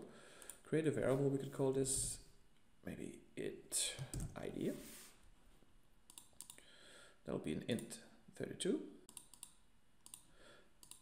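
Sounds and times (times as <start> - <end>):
computer mouse clicks: 6.1 - 6.6, 9.1 - 11.0.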